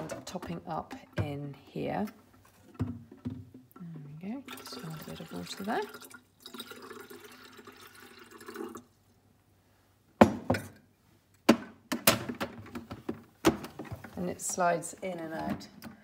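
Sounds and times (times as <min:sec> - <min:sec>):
water pouring into plastic tank: 0:04.5 - 0:09.0.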